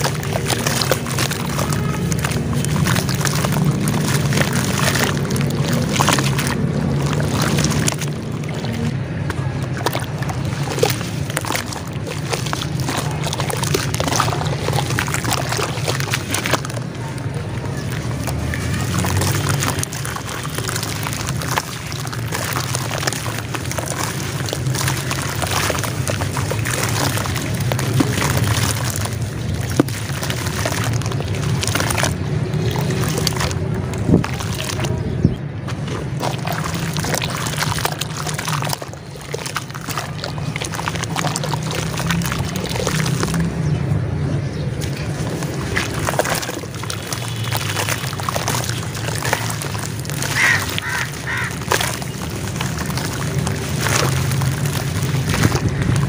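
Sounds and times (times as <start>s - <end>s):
hands squelching wet dirt in water: 0.0s - 56.0s.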